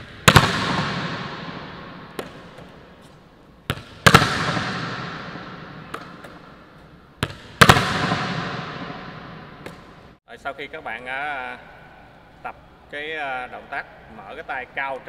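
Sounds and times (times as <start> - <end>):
volleyball slamming off floor: 0.2 - 2.4, 3.7 - 6.3, 7.2 - 10.0.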